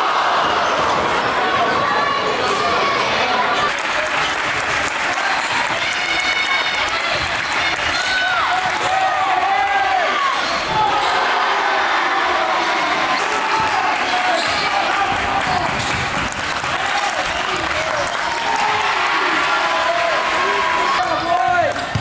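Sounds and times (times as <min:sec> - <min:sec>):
crowd voices echoing: 0:00.0 - 0:22.0.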